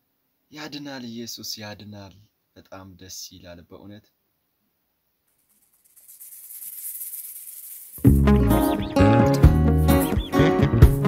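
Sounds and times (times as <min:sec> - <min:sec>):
maracas shaking: 0:05.3 - 0:11.0
song intro music: 0:08.0 - 0:11.0.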